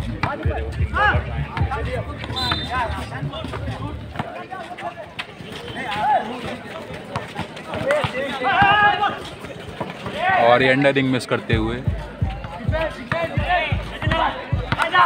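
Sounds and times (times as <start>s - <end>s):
background music beat: 0.0s - 4.2s, 11.4s - 15.0s
people calling out: 0.6s - 6.5s, 7.8s - 9.4s.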